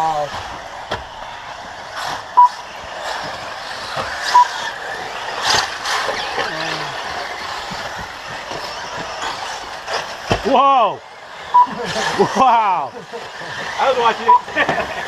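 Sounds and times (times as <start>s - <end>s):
rc car motors whirring: 0.0s - 15.0s
short high beeps: 4.3s - 4.5s, 14.3s - 14.5s.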